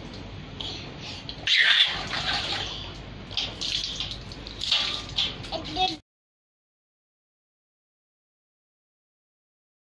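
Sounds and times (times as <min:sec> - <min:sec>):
water splashing and pouring: 0:01.5 - 0:06.0.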